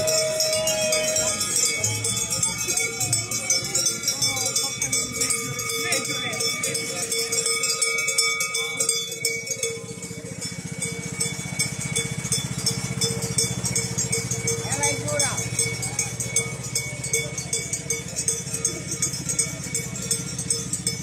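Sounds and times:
bells jingling: 0:00.0 - 0:21.0
ride-on lawn mower engine: 0:00.0 - 0:21.0
voices: 0:00.0 - 0:21.0.

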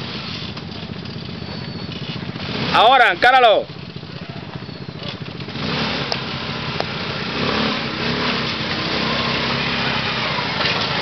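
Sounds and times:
quad engine running at low revs: 0:00.0 - 0:11.0.

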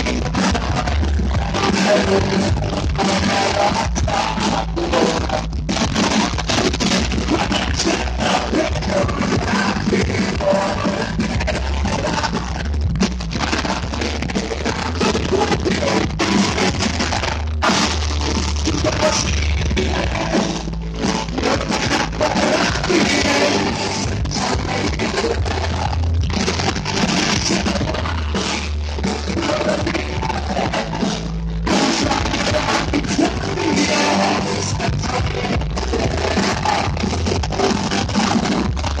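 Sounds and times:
live rock band playing: 0:00.0 - 0:39.0.

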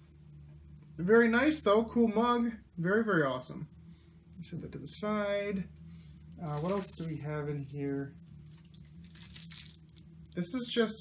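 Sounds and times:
low steady hum: 0:00.0 - 0:11.0
rustling and crinkling packaging: 0:06.2 - 0:10.4.

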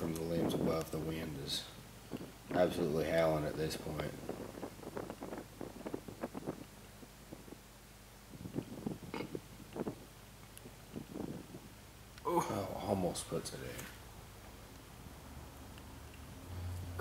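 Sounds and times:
wind buffeting microphone: 0:02.1 - 0:11.8.

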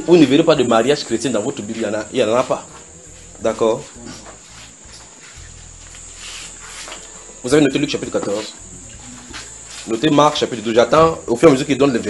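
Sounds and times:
low steady hum: 0:00.0 - 0:11.8
insects droning: 0:00.0 - 0:12.0.

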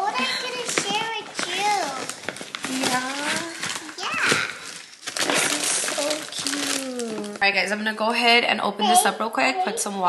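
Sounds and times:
child talking: 0:00.0 - 0:02.2, 0:02.8 - 0:07.4, 0:08.8 - 0:10.0
paper packaging rustling: 0:00.0 - 0:07.4
woman talking: 0:07.1 - 0:10.0.

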